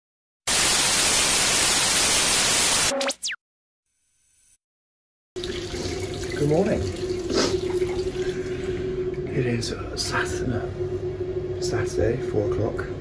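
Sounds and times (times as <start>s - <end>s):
electronic burst with sweeping whistles: 0.6s - 3.4s.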